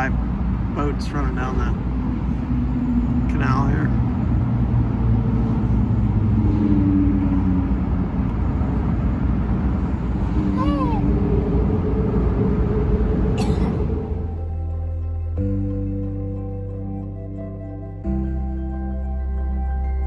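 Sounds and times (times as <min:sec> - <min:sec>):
boat engine humming: 0:01.2 - 0:20.0.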